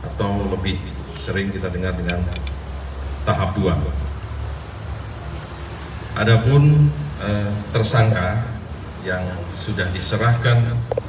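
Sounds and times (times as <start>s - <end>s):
background traffic rumble: 0.0s - 11.0s.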